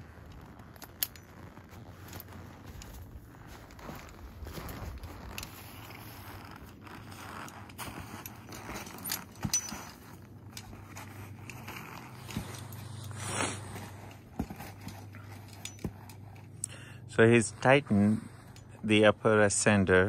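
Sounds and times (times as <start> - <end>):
climbing hardware clicking: 0.0 - 16.9.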